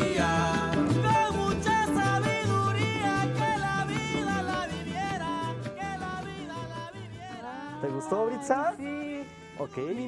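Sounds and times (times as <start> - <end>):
bass line: 0.0 - 9.8
person singing: 0.0 - 10.0
string accompaniment: 0.0 - 10.0.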